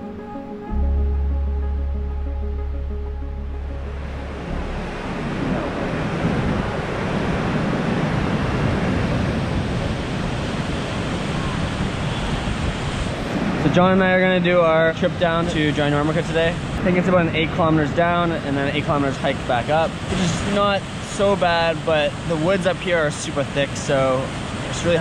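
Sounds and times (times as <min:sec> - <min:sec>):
music with deep bass note: 0:00.0 - 0:07.2
wind buffeting microphone: 0:04.0 - 0:19.1.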